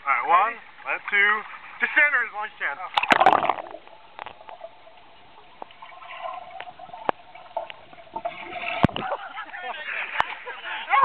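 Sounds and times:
underwater bubbling: 2.9s - 10.3s.

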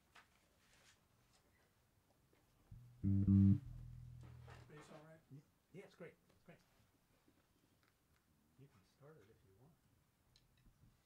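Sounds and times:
plucked double bass notes: 2.7s - 4.7s.

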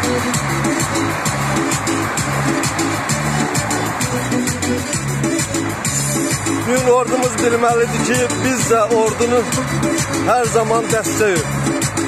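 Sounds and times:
music with fast steady beat: 0.0s - 12.0s.

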